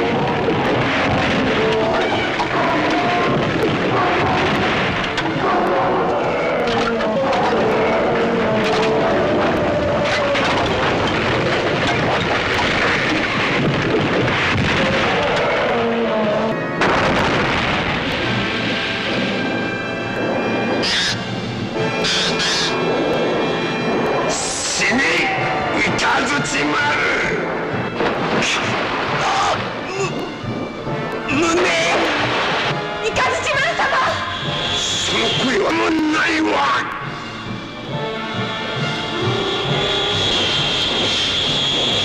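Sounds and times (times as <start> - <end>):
booms and crashing effects: 0.0 - 15.9, 16.8 - 42.0
dramatic film music: 0.0 - 42.0
sharp high bursts: 33.9 - 35.7.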